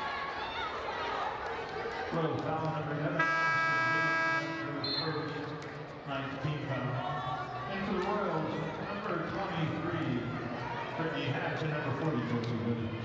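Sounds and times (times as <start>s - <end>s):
crowd murmur: 0.0s - 13.0s
scoreboard horn: 3.1s - 5.3s.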